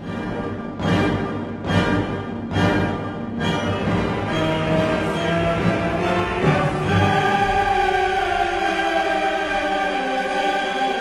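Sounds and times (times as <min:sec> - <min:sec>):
choir singing sustained notes: 0:00.0 - 0:11.0
orchestra playing: 0:00.0 - 0:11.0.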